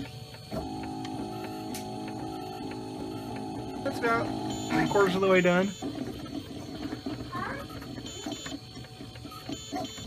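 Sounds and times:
printer motors whirring: 0.0s - 10.0s.

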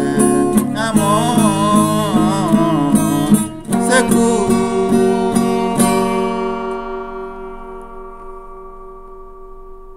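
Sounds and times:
acoustic guitar chord ringing: 0.0s - 9.9s.

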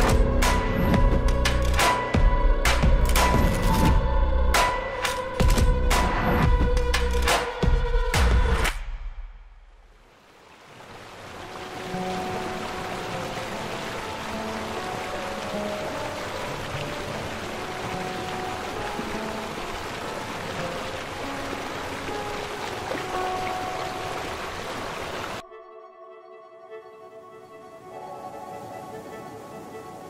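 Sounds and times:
stream water rushing: 9.9s - 25.4s, 27.8s - 30.0s.

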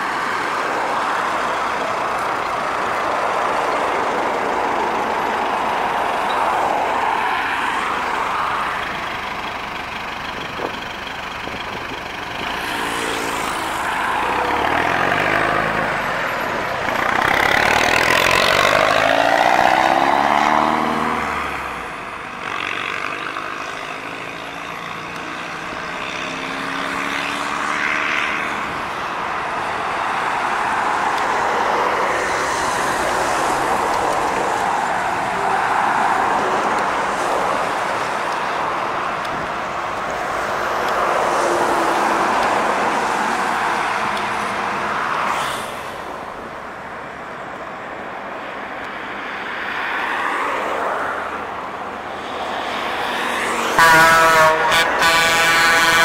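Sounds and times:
diesel truck driving past: 0.0s - 23.5s
road traffic noise: 0.0s - 56.0s.

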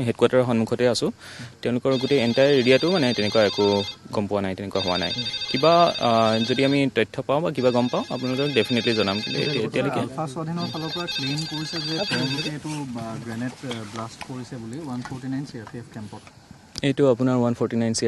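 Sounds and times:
man speaking: 0.0s - 18.0s
phone ringtone: 1.9s - 4.1s, 4.7s - 12.7s.

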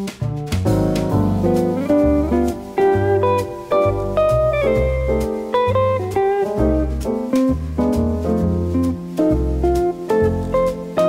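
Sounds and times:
light regular beat: 0.0s - 11.0s
pulsing bass line: 0.0s - 11.0s.

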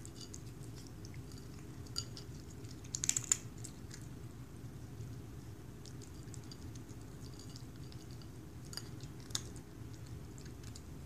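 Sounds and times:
cat chewing and licking wet food: 0.0s - 11.0s.

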